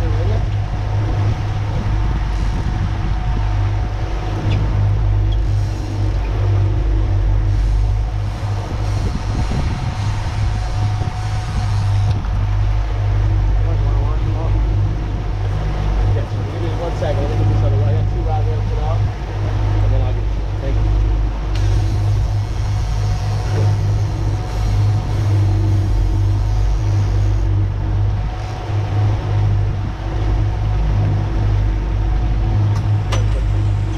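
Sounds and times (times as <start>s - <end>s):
outboard motors running: 0.0s - 33.9s
rushing water: 0.0s - 33.9s
wind: 0.0s - 33.9s.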